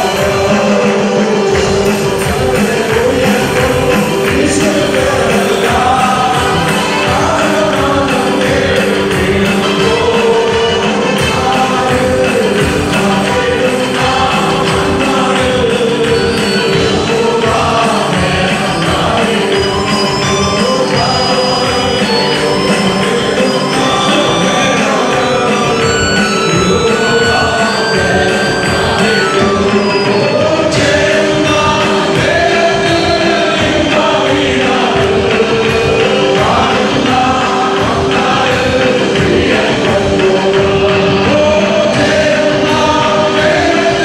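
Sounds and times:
choir singing gospel song: 0.0s - 44.0s
rhythmic hand clapping: 0.0s - 44.0s
steady beat: 0.0s - 44.0s.

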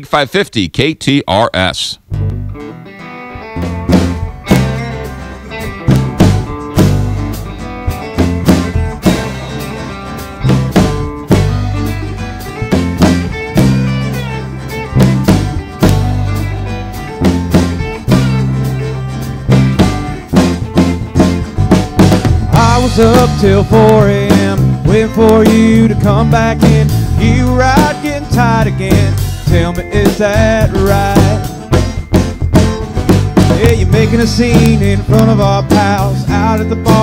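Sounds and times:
live rock band instrumental: 2.0s - 37.0s.

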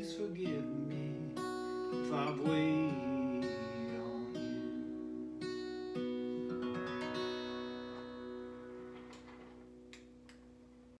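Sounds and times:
acoustic guitar chord ringing: 0.0s - 10.8s.

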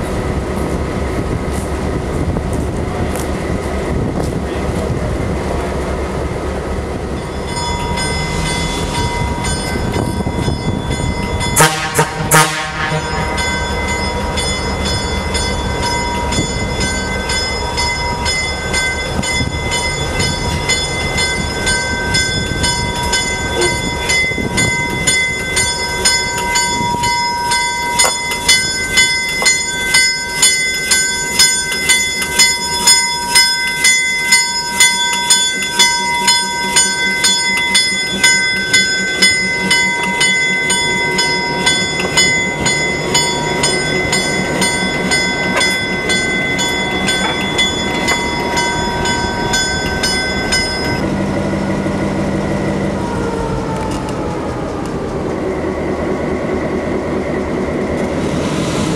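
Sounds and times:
locomotive bell ringing: 5.6s - 58.0s
low engine rumble: 31.5s - 58.9s.

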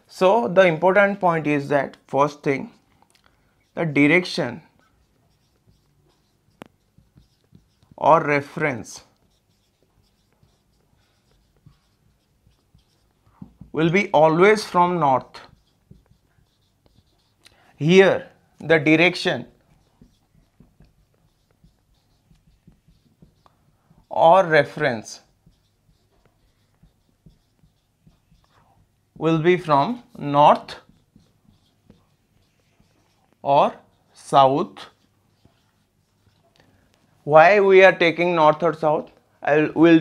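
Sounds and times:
marker writing on whiteboard: 0.0s - 40.0s.

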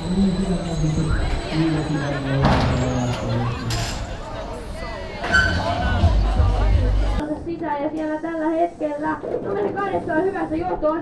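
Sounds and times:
music with heavy bass beat: 5.8s - 7.2s.

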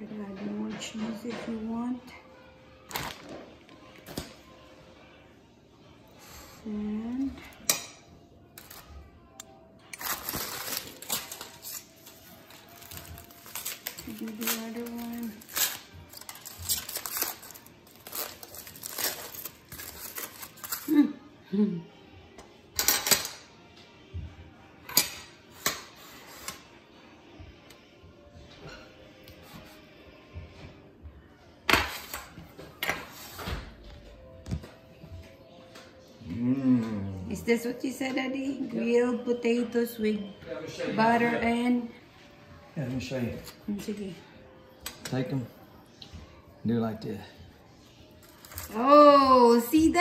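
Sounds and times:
cheese rustle: 9.9s - 21.1s.

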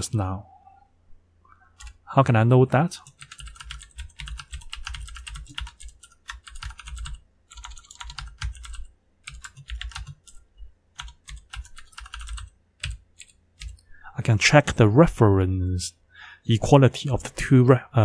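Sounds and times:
computer keyboard typing: 3.0s - 10.4s, 11.0s - 13.8s.

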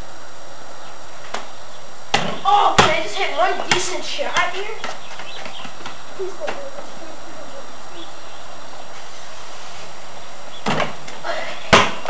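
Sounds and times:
basketball bouncing on concrete: 2.1s - 6.7s, 10.6s - 12.0s
steady hiss: 5.9s - 11.8s.

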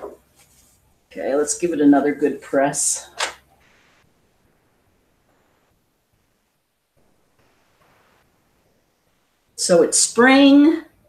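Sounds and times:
faint hiss: 2.5s - 10.5s.

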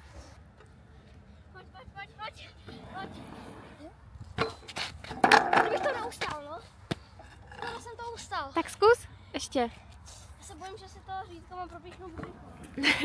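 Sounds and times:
scooter clattering onto asphalt: 4.4s - 6.4s.

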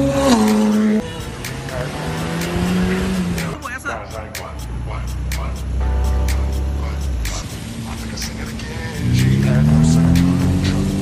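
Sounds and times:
background music: 0.0s - 11.0s
car engine low and steady: 0.0s - 11.0s
sports car engine passing: 0.0s - 11.0s.

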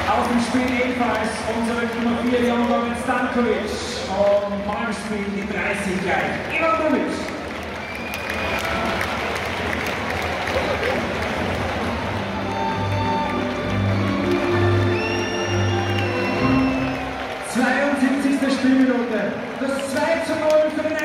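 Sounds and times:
stadium crowd cheering and clapping: 0.0s - 21.0s
song over stadium loudspeakers: 11.4s - 19.3s.

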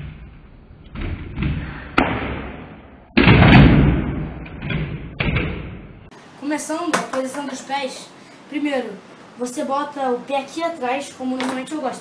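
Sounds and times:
skateboard landing slam: 0.0s - 6.0s.

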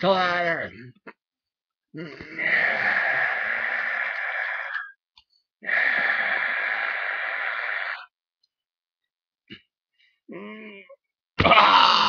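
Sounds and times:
person exhaling with a hiss: 5.6s - 8.1s.

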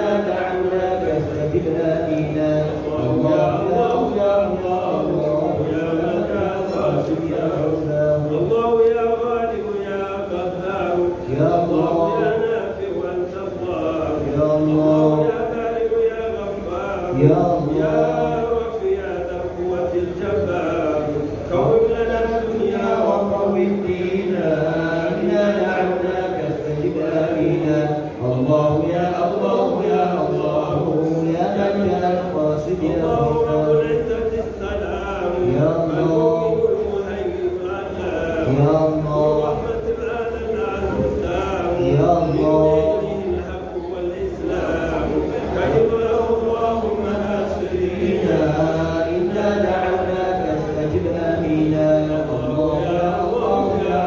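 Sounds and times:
man chanting through microphone: 0.0s - 54.0s.

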